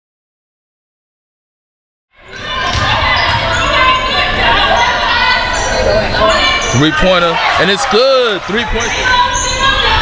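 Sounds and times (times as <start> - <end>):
crowd and player voices: 2.1 - 10.0.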